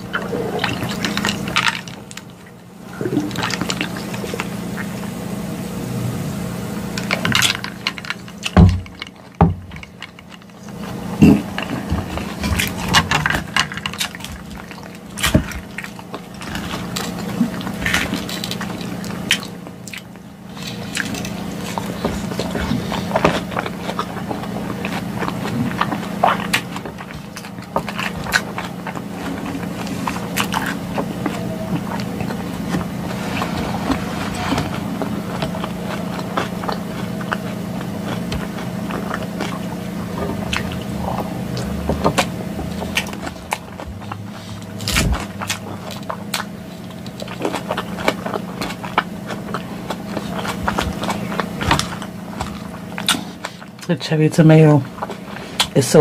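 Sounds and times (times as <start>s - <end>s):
chewing and crunching salad: 0.0s - 56.0s
steady low hum: 0.0s - 56.0s.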